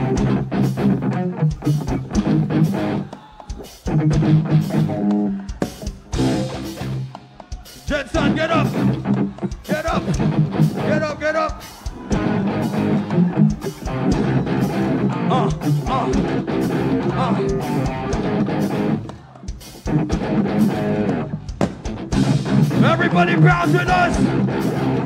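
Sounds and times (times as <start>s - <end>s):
drum kit beat: 0.0s - 25.0s
electric guitars: 0.0s - 25.0s
person singing: 11.9s - 19.7s.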